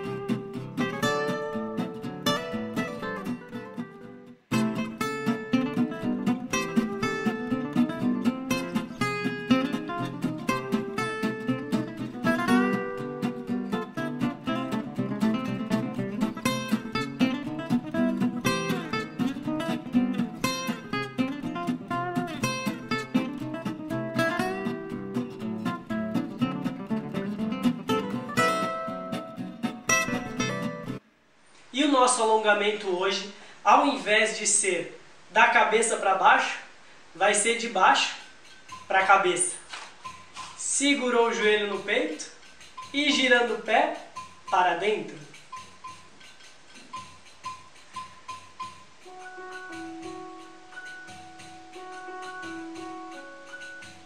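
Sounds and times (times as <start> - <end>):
acoustic guitar playing: 0.0 - 31.0, 38.3 - 54.0.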